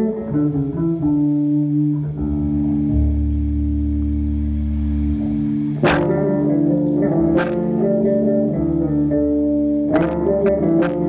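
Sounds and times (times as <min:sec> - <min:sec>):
electric guitar chord: 0:00.0 - 0:11.0
low bass note: 0:01.9 - 0:08.8
sharp drum hit: 0:05.8 - 0:06.5.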